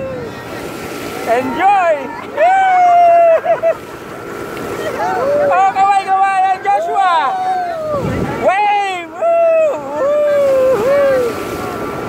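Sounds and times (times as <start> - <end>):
rush of wind and water: 0.0 - 12.0
person shouting: 1.4 - 3.5.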